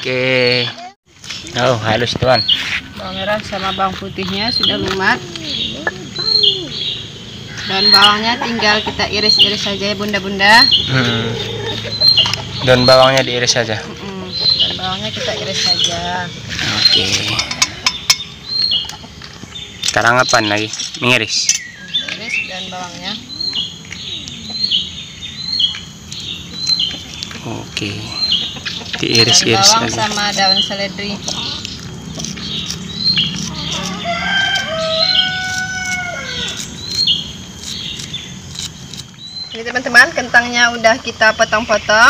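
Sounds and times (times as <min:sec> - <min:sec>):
high bird chirps: 0:02.2 - 0:13.6, 0:14.2 - 0:42.0
rooster crowing: 0:33.5 - 0:36.8.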